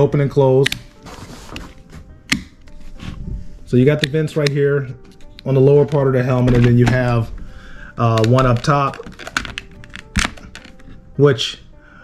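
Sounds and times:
helmet vent clicks and taps: 4.0 - 6.0.

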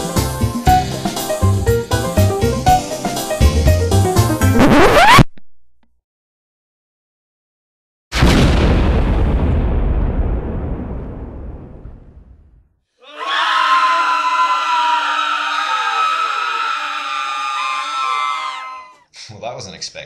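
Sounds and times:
explosion blast: 8.1 - 12.7
crowd screaming: 13.0 - 19.0.

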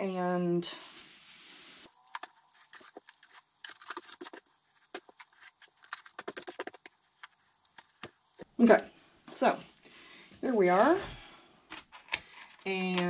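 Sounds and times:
shredded paper rustling: 1.2 - 8.1.

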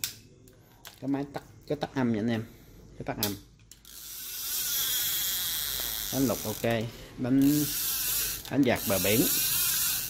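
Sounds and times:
fishing reel whirring: 3.8 - 10.0.

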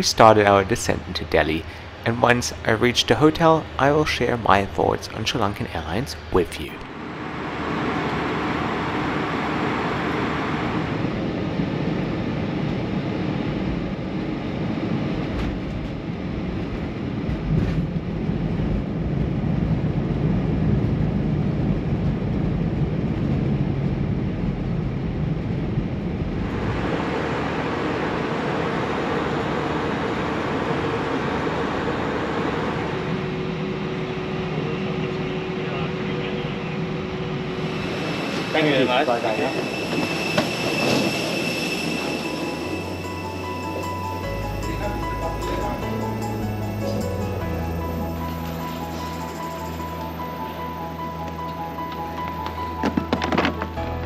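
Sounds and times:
cabin airflow rush: 0.0 - 50.2
jet engine whine: 0.0 - 54.0
taxiing hum: 0.0 - 54.0
deep low rumble: 6.9 - 38.6, 42.2 - 54.0.

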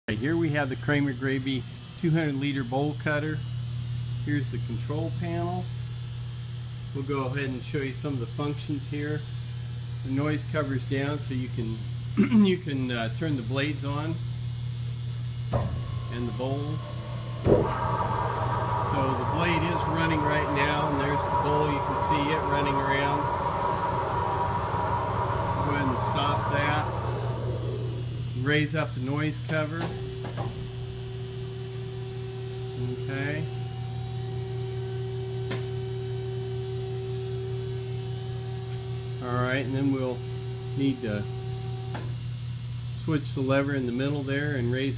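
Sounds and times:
electrical hum: 12.2 - 42.2
blade motor whine: 15.5 - 41.9.

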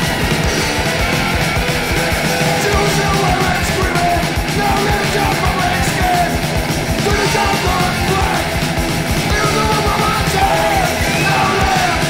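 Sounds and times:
bass guitar: 0.0 - 12.0
distorted electric guitar: 0.0 - 12.0
fast drumming: 0.0 - 12.0
person shouting vocals: 7.0 - 8.5, 9.2 - 12.0.

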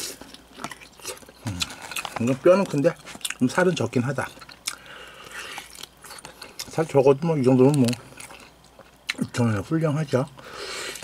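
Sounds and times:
plastic tray and wrap crackling: 0.2 - 4.6.

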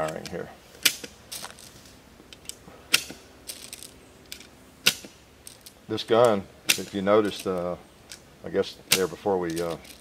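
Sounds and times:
light ticks of brass handling: 0.0 - 10.0.

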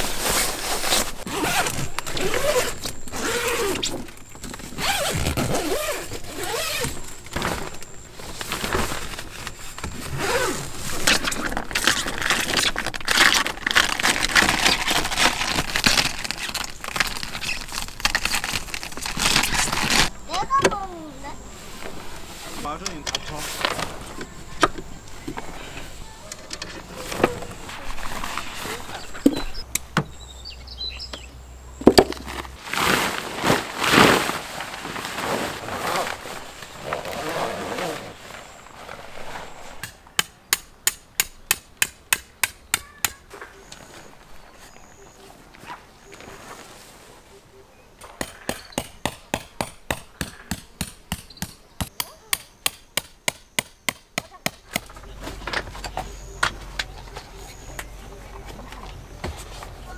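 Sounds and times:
handling noise: 0.0 - 30.2.

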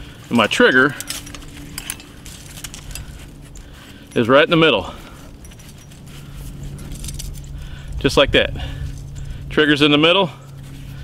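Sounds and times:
metal trap clinking and rattling: 0.2 - 9.3.

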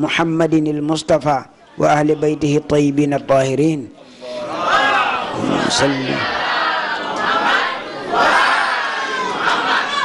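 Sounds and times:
crowd shouting together: 4.2 - 10.0.

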